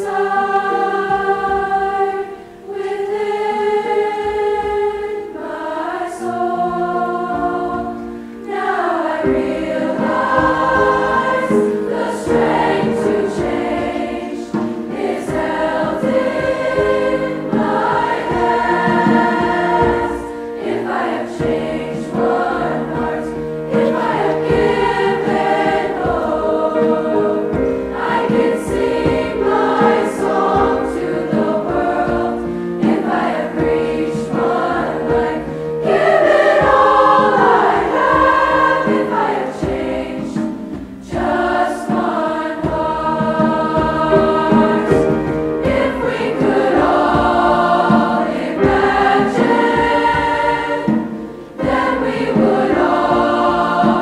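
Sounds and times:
treble choir singing: 0.0 - 54.0.

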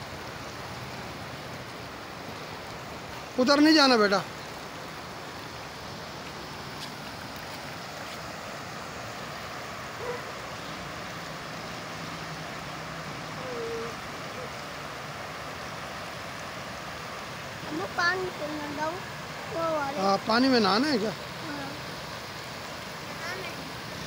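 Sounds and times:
water rushing through a drain: 0.0 - 24.0.

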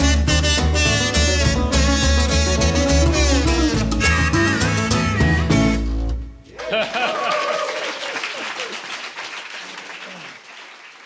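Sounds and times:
audience laughter: 6.5 - 9.1
audience applauding: 6.5 - 11.0.

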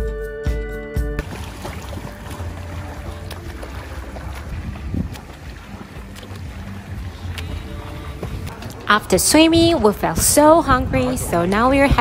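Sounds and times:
faint water splashing: 1.2 - 12.0
wind rumbling on microphone: 1.2 - 12.0.

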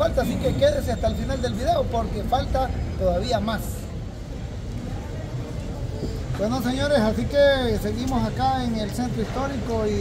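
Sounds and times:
faint distant voices: 0.0 - 10.0
low street rumble: 0.0 - 10.0.

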